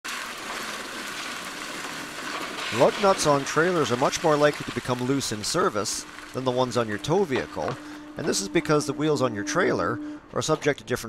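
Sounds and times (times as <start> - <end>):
tyres rolling over gravel: 0.0 - 11.0.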